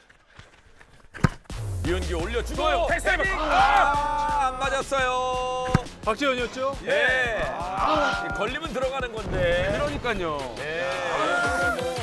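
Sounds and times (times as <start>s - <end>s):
music with low bass: 1.5s - 8.2s
football kicked thump: 5.6s - 6.0s.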